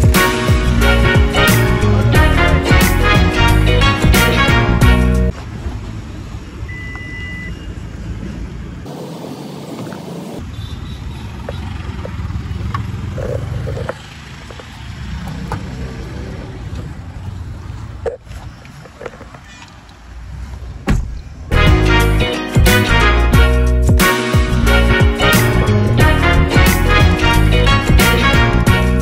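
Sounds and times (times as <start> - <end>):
car door clicks and knocks: 20.8 - 21.3.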